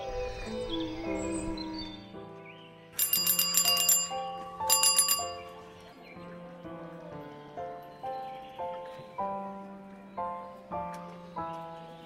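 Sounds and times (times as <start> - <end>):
background music with held melody: 0.0 - 12.0
bicycle bell trills: 3.0 - 5.6.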